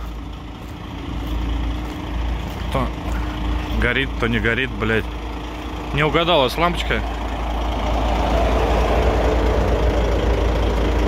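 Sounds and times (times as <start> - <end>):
diesel truck engine idling: 0.0 - 11.0.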